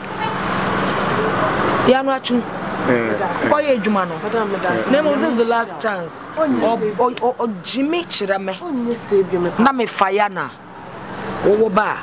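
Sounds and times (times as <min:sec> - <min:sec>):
vehicle passing close by: 0:00.0 - 0:12.0
voices: 0:00.0 - 0:12.0.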